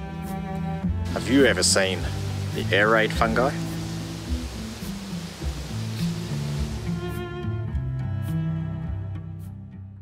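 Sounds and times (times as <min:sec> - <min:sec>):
low bowed strings: 0:00.0 - 0:09.7
hiss: 0:03.5 - 0:07.1.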